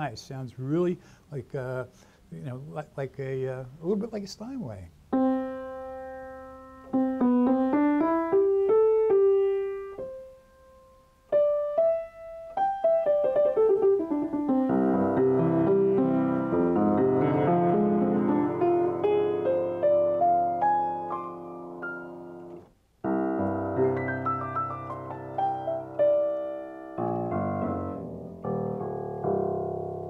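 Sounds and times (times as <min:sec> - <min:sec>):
grand piano playing: 0:02.5 - 0:30.0.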